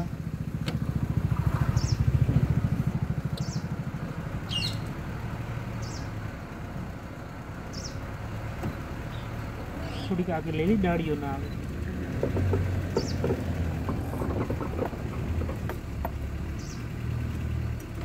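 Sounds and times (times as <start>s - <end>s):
vehicle engine idling: 0.0s - 18.0s.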